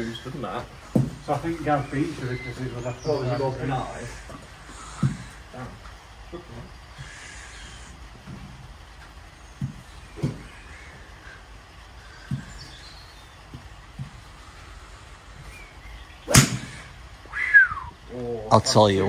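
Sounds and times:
faint bird chirps: 0.0s - 5.4s, 9.3s - 18.5s
soft thumps: 0.9s - 1.5s, 12.2s - 12.7s, 13.4s - 14.3s
golf club striking ball: 16.2s - 16.9s.

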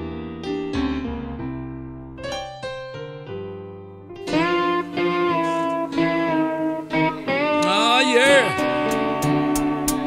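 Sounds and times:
blues band playing: 4.3s - 10.0s
lead guitar with bent notes: 4.3s - 10.0s.

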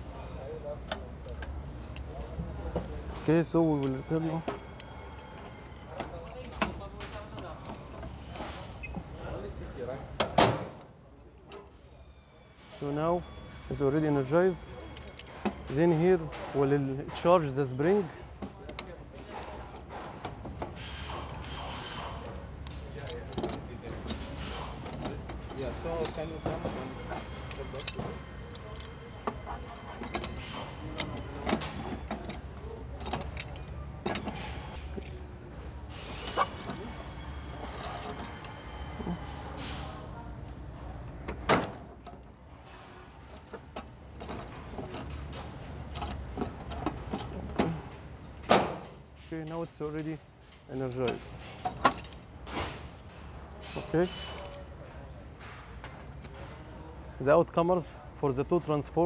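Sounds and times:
lever mechanism clicks and clanks: 21.0s - 35.2s, 41.3s - 47.8s, 50.8s - 52.8s.

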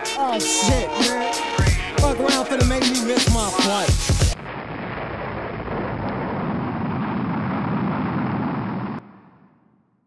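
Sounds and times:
rocket launch rumble: 4.4s - 9.6s.

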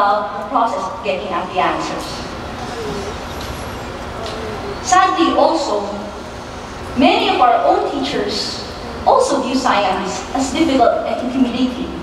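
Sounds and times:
low rumble with hiss: 0.0s - 12.0s.

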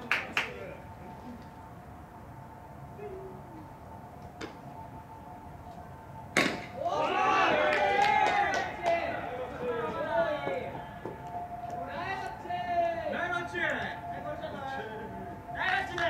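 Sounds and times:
bat cracking against ball: 6.4s - 6.8s
players shouting: 6.7s - 10.8s.

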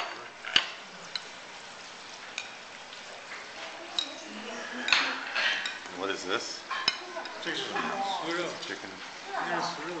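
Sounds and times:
cutlery clinking on plates: 0.0s - 1.3s, 4.8s - 5.9s, 6.6s - 8.0s.

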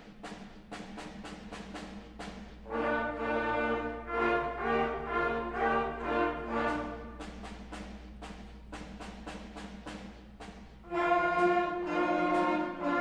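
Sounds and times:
percussion beat: 0.0s - 13.0s.

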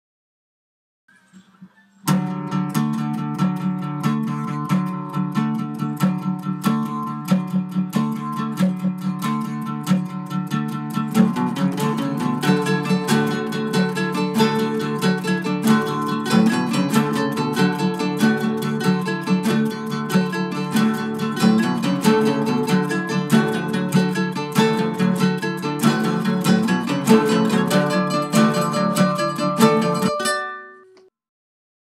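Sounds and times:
acoustic guitar chords: 2.0s - 30.8s.

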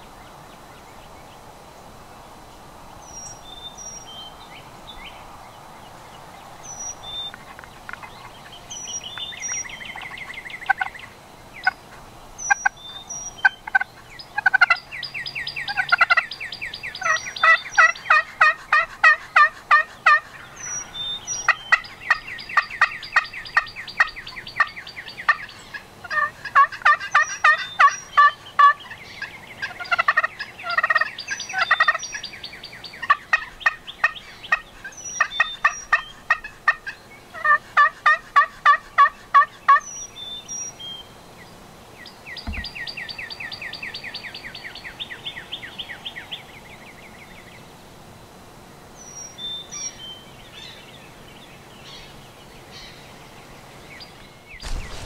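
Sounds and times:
turkey yelps and cutts: 25.3s - 28.8s, 33.0s - 39.9s.

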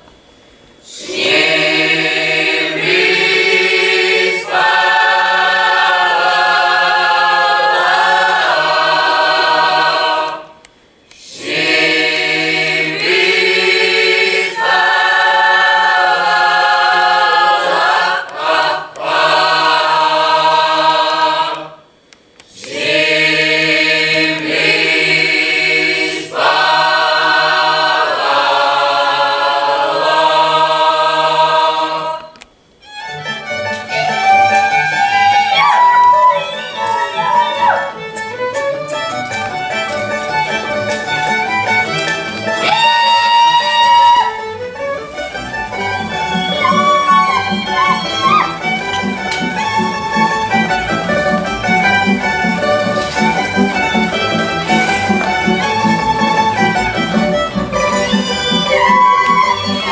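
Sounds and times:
mixed choir singing unaccompanied: 0.8s - 32.5s, 33.1s - 59.9s.

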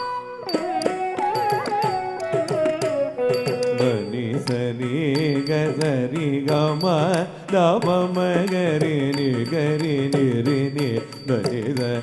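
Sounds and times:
person singing wavering melody: 0.0s - 12.0s
sharp percussive strikes: 0.0s - 12.0s.

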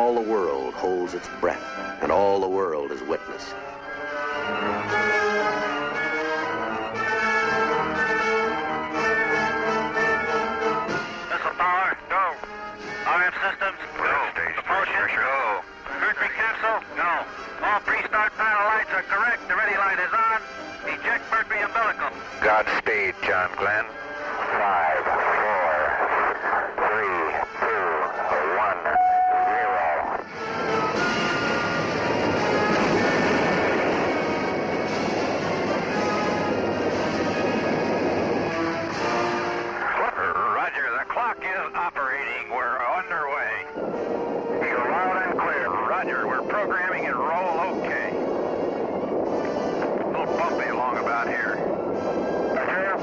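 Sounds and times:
music: 0.0s - 53.0s
rocket engines roaring: 0.0s - 53.0s
radio voices: 11.3s - 30.2s, 39.7s - 43.9s, 44.5s - 48.2s, 49.8s - 51.6s, 52.5s - 53.0s.

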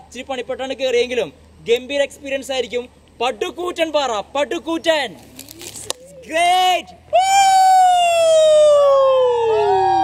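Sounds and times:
man yelling: 6.2s - 9.9s.

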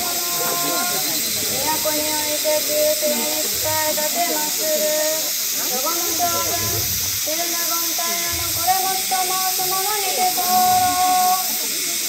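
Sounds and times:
constant bright hiss: 0.0s - 12.0s.

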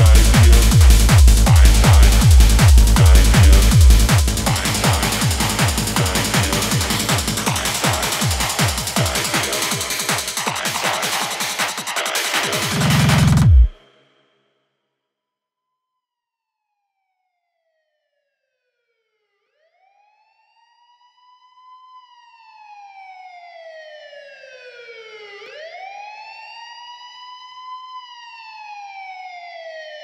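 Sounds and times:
police siren wail: 0.0s - 13.7s, 19.8s - 30.0s
hard techno track: 0.0s - 13.8s.

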